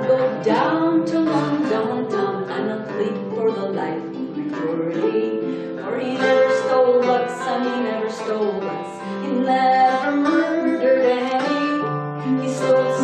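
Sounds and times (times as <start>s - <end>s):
plucked harp and bouzouki: 0.0s - 13.0s
woman singing: 0.0s - 13.0s.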